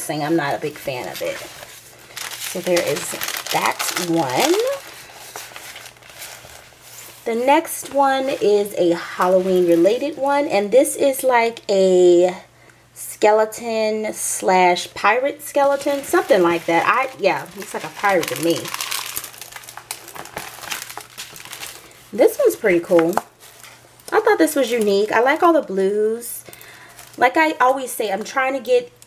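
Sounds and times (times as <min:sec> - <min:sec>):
plastic film crinkling: 0:00.2 - 0:10.4, 0:15.6 - 0:25.8, 0:26.4 - 0:28.3
plastic packaging rustling: 0:00.2 - 0:10.4, 0:15.5 - 0:25.8, 0:26.4 - 0:28.3.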